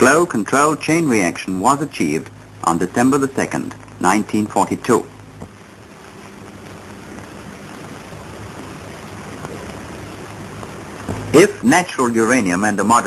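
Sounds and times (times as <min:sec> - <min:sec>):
steady rushing hiss: 0:00.0 - 0:13.0.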